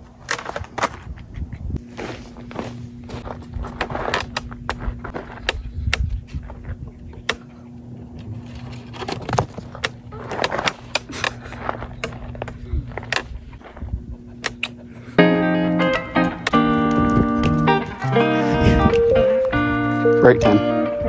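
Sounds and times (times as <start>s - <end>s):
footsteps on gravelly dirt: 0.1s - 6.8s, 8.3s - 14.0s.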